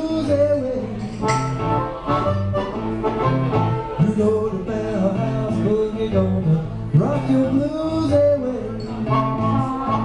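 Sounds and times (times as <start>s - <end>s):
guitar shuffle with walking bass line: 0.0s - 10.0s
blues harmonica: 1.3s - 4.3s, 9.0s - 10.0s.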